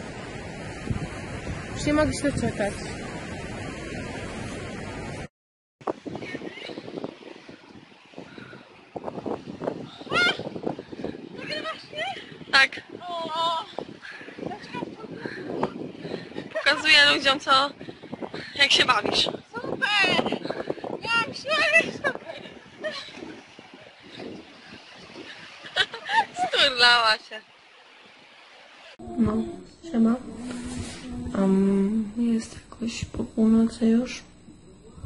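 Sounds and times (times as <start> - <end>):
wind on microphone: 0.0 - 26.8, 29.0 - 35.0
sea surf: 0.0 - 31.2.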